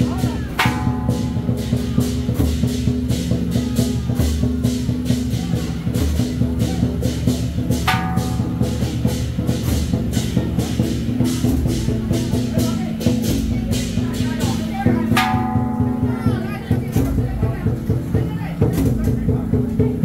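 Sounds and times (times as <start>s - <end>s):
crowd voices: 0.0s - 20.0s
fast percussion beat: 0.0s - 20.0s.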